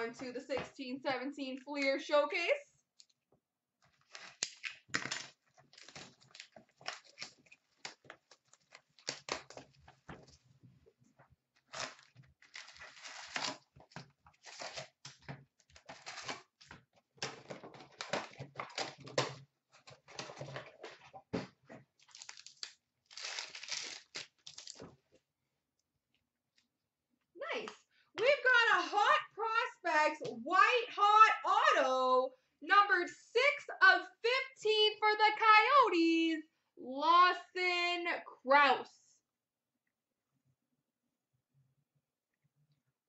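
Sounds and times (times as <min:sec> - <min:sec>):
tearing and crinkling foil wrappers: 0:03.9 - 0:09.8, 0:11.6 - 0:15.2, 0:15.8 - 0:16.7, 0:22.0 - 0:24.8.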